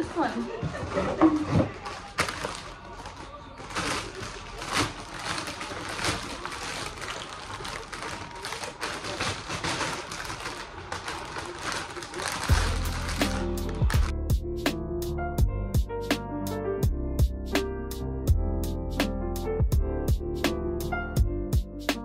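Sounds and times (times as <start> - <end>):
plastic packaging crinkling: 0.0 - 14.1
electronic music with a beat: 12.5 - 22.0.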